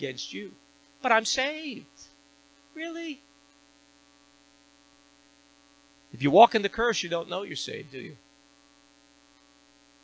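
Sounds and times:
person speaking: 0.0s - 2.1s, 2.7s - 3.2s, 6.2s - 8.2s
electrical mains hum: 0.0s - 10.0s.

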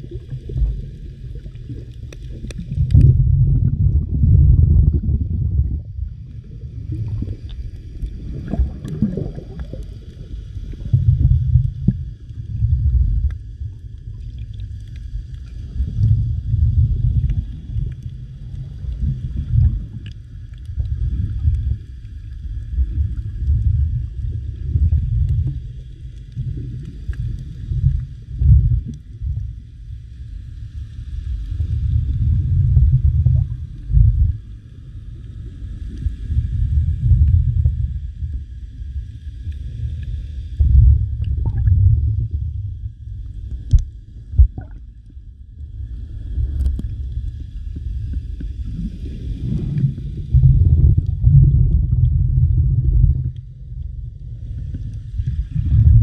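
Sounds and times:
underwater water rumble: 0.0s - 56.0s.

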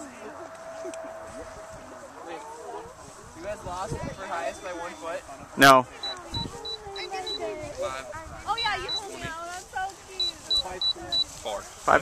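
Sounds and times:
voices: 0.0s - 12.0s
short high beeps: 6.0s - 7.5s, 8.5s - 9.2s, 10.2s - 11.3s.

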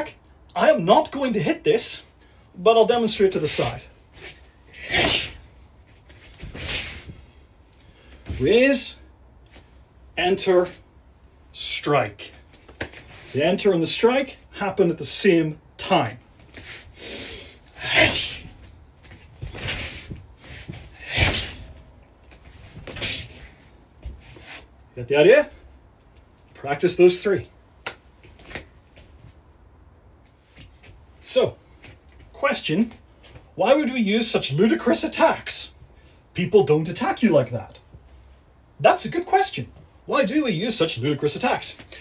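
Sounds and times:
clothing swishing: 4.2s - 7.6s, 17.8s - 24.7s
foot thumping on foam mat: 18.0s - 23.4s
swishing of a hand strike: 19.4s - 21.8s.

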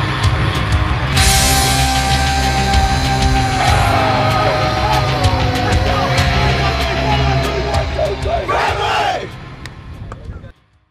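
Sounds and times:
rock music with heavy bass: 0.0s - 9.5s
men shouting a team cheer: 2.8s - 9.4s.

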